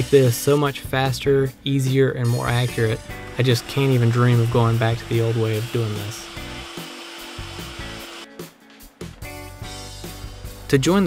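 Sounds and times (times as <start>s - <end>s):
quiet background music: 0.0s - 11.0s
shop vacuum running: 2.8s - 8.3s.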